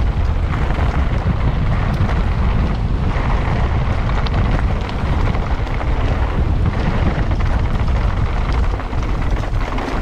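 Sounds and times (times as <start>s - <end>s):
bike tyres rolling on gravel: 0.0s - 10.0s
stones and bike rattling: 0.0s - 10.0s
wind buffeting microphone: 0.0s - 10.0s.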